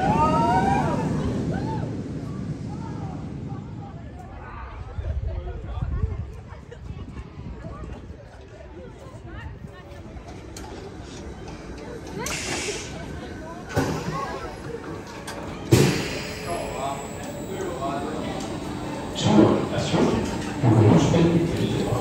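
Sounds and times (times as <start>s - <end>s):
people's voices: 0.0s - 22.0s
roller coaster wheels on track: 0.0s - 22.0s.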